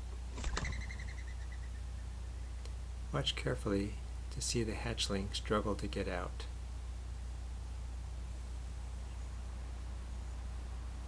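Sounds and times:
dove wings flapping: 0.3s - 1.1s.

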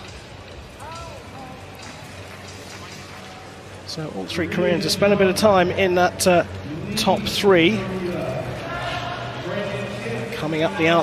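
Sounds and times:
crowd and rink noise: 0.0s - 11.0s.

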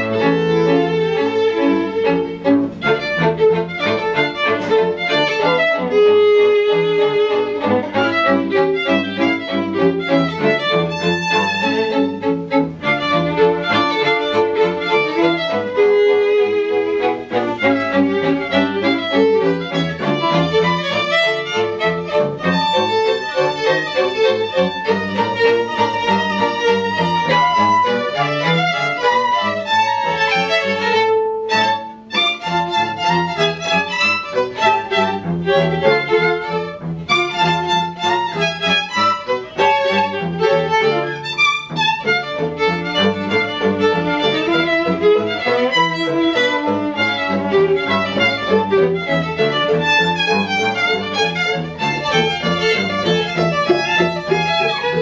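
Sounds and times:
string quartet playing ragtime: 0.0s - 55.0s.

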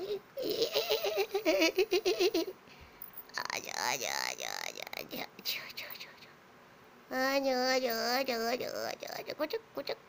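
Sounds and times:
person whispering: 4.4s - 6.4s.

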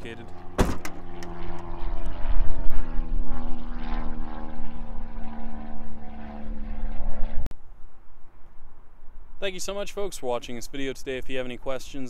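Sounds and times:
pitched engine drone: 0.0s - 7.5s.

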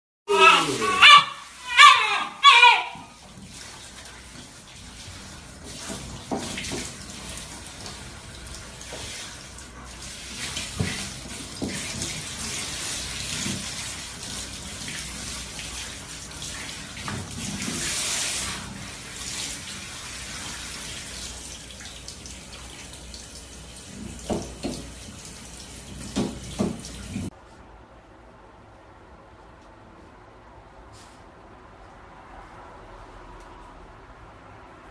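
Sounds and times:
dog barking: 0.3s - 3.2s
water spraying from shower head: 0.3s - 21.6s.

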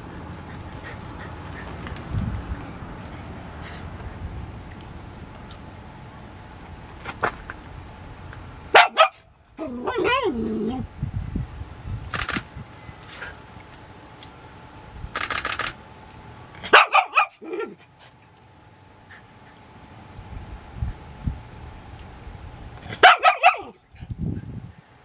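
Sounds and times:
dogs barking: 8.7s - 10.3s, 16.6s - 17.8s, 22.9s - 23.8s
dog wavering cry: 8.8s - 10.9s.

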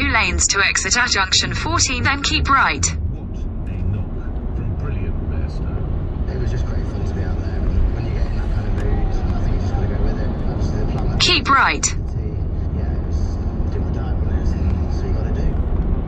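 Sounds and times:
car road and engine rumble: 0.0s - 16.0s.

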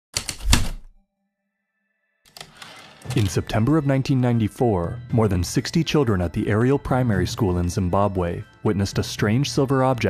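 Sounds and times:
typewriter key strikes: 0.2s - 0.8s.

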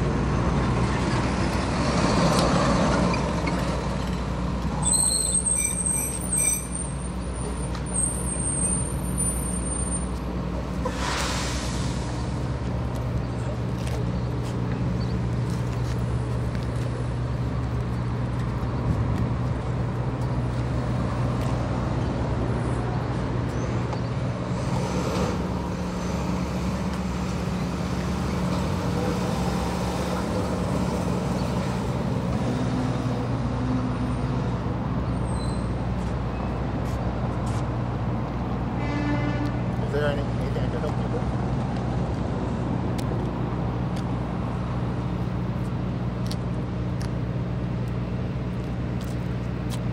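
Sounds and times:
traffic engine hum: 0.0s - 49.9s
short hiss: 10.8s - 12.4s.

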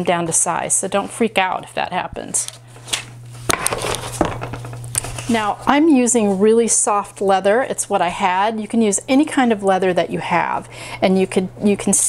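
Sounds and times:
steady low hum: 0.0s - 12.0s
paper pages rustling: 2.4s - 5.4s.

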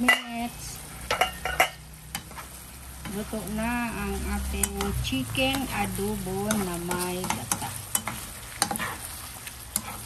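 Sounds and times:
sauce simmering and bubbling: 3.9s - 10.0s.

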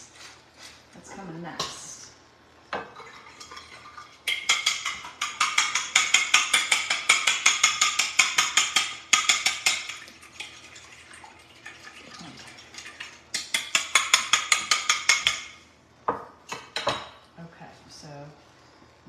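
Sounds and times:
fork beating eggs in glass bowl: 3.3s - 10.6s, 11.9s - 15.6s.

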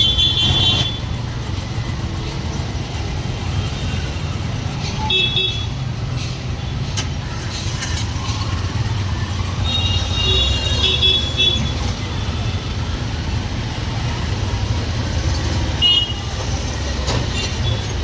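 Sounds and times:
street traffic: 0.0s - 18.0s.

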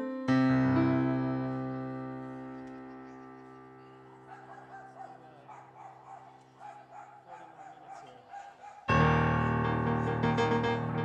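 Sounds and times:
electric piano chord: 0.0s - 5.5s, 8.9s - 11.0s
keyboard-led music: 0.0s - 6.5s, 8.9s - 11.0s.

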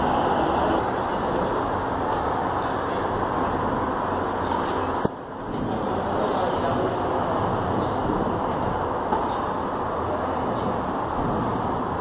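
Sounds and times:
city traffic hum: 0.0s - 12.0s.

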